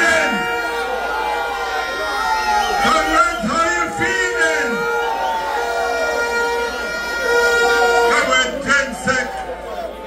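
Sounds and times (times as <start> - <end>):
crowd noise: 0.0 - 10.0
horn blowing long note: 4.4 - 8.6.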